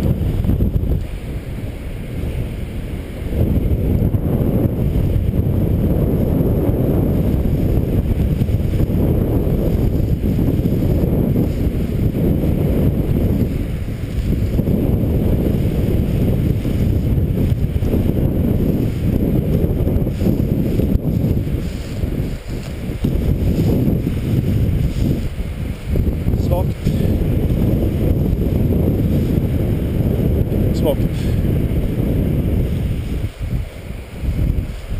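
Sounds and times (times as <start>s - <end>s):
wind buffeting microphone: 0.0s - 34.9s.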